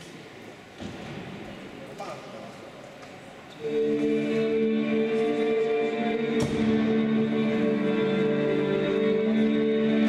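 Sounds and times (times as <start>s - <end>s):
steady hum of ice rink hall: 0.0s - 10.0s.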